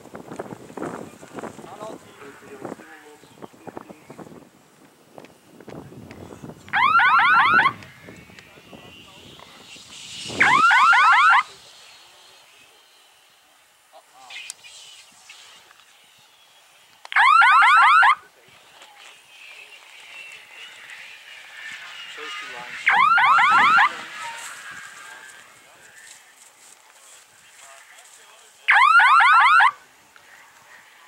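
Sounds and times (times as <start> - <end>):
loud warbling electronic beep: 6.8 - 7.8, 10.4 - 11.5, 22.3 - 24.1.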